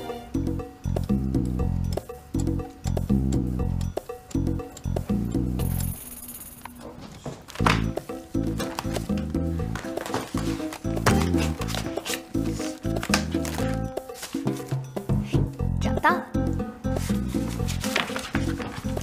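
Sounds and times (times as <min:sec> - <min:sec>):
bouncy low-note background music: 0:00.0 - 0:06.5, 0:07.5 - 0:19.0.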